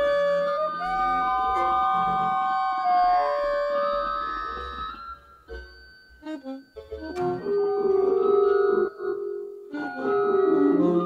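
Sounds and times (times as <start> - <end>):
saxophone: 0.0 - 5.3, 6.2 - 11.0
electronic wind instrument: 0.0 - 5.5, 6.2 - 11.0
keyboard: 0.0 - 11.0.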